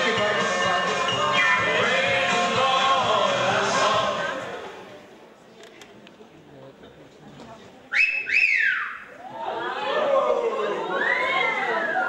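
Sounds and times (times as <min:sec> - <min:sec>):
voices: 0:05.7 - 0:12.0
two-note wolf whistle: 0:07.9 - 0:09.0.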